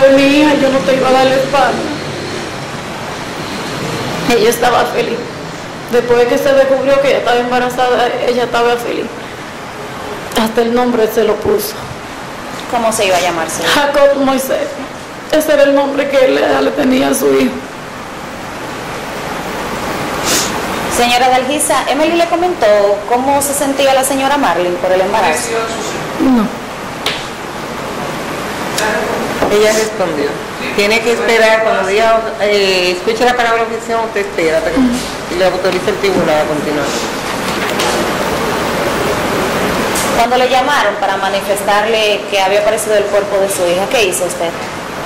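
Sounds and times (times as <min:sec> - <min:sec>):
steady background hiss: 0:00.0 - 0:45.0.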